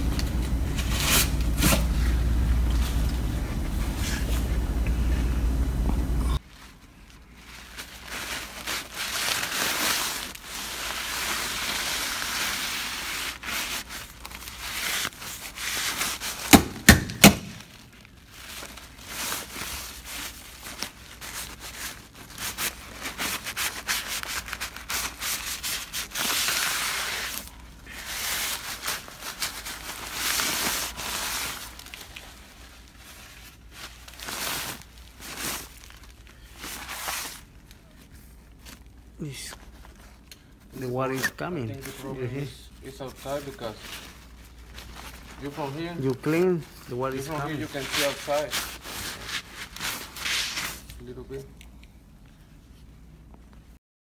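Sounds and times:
paper and plastic rustling: 6.4s - 53.8s.

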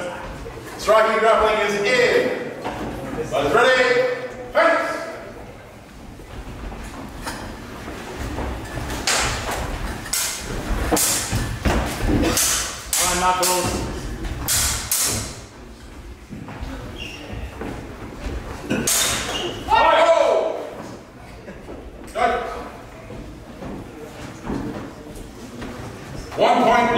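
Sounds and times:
footsteps on wooden floor: 5.8s - 12.3s, 15.5s - 18.8s, 23.0s - 26.5s.

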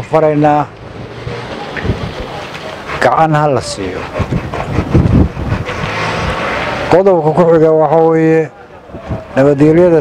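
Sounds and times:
wind buffeting microphone: 0.7s - 10.0s.

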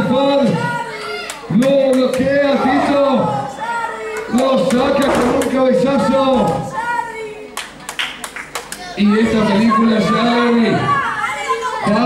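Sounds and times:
crowd voices: 0.0s - 12.0s
spectators clapping: 1.2s - 2.3s, 4.1s - 6.7s, 7.5s - 9.0s.

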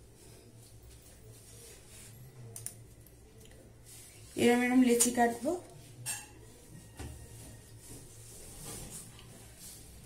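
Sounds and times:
woman speaking: 4.3s - 5.8s.

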